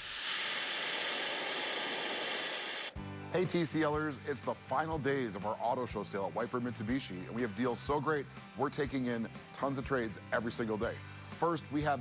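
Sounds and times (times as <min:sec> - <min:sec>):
high even hiss: 0:00.0 - 0:03.0.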